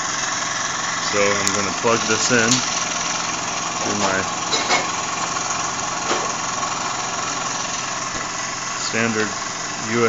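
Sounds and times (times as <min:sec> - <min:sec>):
model steam engine running: 0:00.0 - 0:10.0.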